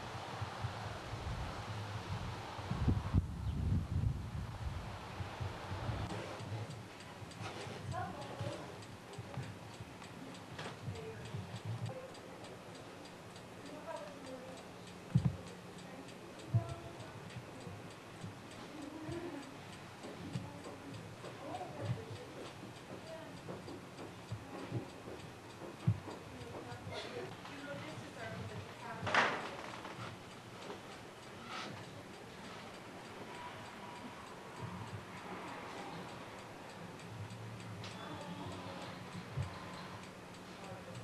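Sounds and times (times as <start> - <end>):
faint steady ticking: 0.0 - 41.0
faint distant voices: 6.0 - 41.0.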